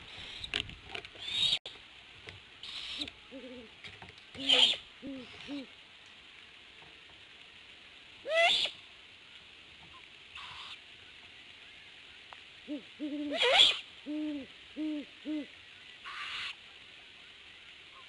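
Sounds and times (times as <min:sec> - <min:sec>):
owlets raspy begging screeches: 0:02.6 - 0:03.1, 0:04.4 - 0:04.8, 0:08.3 - 0:08.7, 0:13.3 - 0:13.8
owl low hoots: 0:04.4 - 0:05.7, 0:12.6 - 0:16.6.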